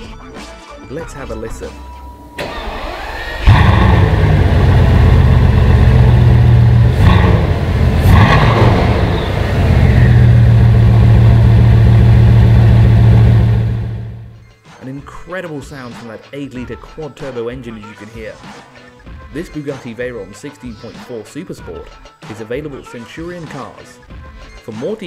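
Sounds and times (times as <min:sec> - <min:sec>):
car engine starting and idling: 0:02.2 - 0:14.4
engine revving blips: 0:02.2 - 0:14.4.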